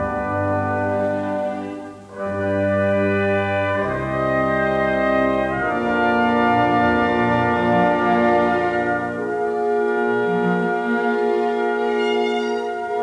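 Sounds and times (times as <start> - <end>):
orchestra with brass chords: 0.0 - 13.0.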